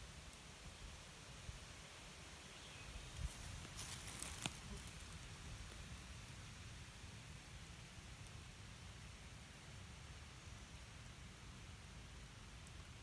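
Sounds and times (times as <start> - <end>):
rustle: 0.0 - 13.0
woodland ambience: 0.0 - 13.0.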